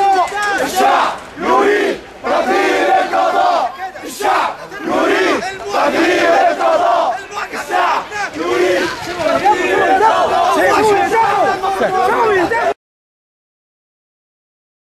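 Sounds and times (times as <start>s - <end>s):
crowd chanting slogans: 0.0s - 12.8s.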